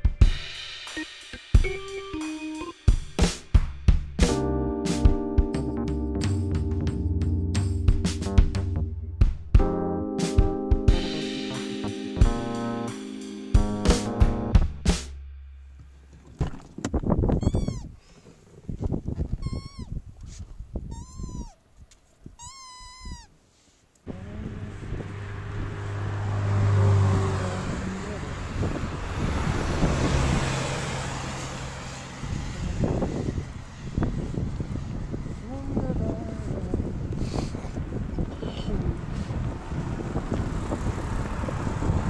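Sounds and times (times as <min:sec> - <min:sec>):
music with drums: 0:00.0 - 0:07.0, 0:07.6 - 0:15.2
wind noise: 0:16.1 - 0:23.3, 0:24.1 - 0:26.0, 0:26.6 - 0:42.0
dog whining: 0:17.4 - 0:18.0, 0:19.4 - 0:20.0, 0:20.9 - 0:21.6, 0:22.4 - 0:23.4
traffic: 0:21.9 - 0:42.0
passing vehicle hum: 0:24.1 - 0:42.0.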